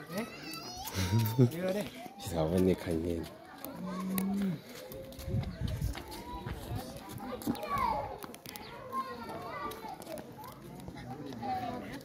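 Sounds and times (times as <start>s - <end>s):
children playing and chattering: 0.0s - 12.0s.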